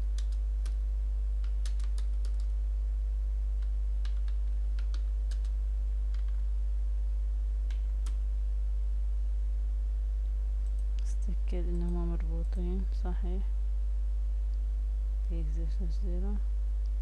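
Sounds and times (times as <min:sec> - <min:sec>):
low hum: 0:00.0 - 0:17.0
keyboard typing: 0:00.1 - 0:00.8, 0:01.4 - 0:02.6, 0:03.6 - 0:06.4.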